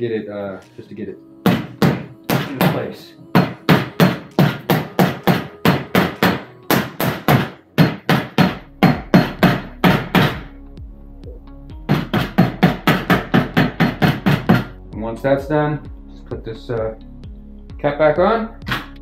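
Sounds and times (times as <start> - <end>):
rubber mallet striking tyre: 3.4 - 10.5.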